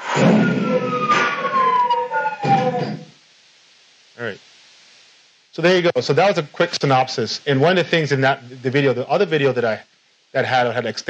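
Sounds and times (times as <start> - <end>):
tone sliding down in pitch: 0.0 - 3.1
rushing sound effect: 0.0 - 3.2.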